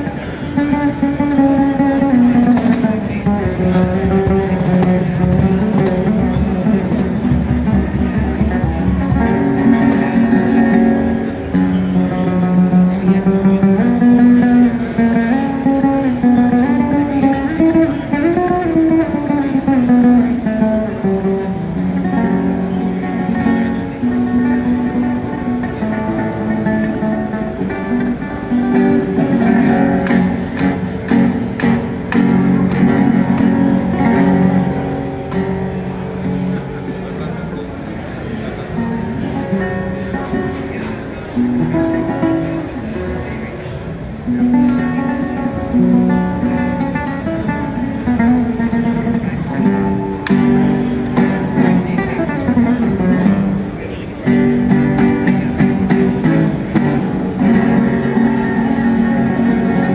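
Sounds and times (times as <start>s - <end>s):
acoustic guitar melody: 0.0s - 59.9s
hand slaps on cajon: 29.4s - 34.3s, 50.2s - 51.4s.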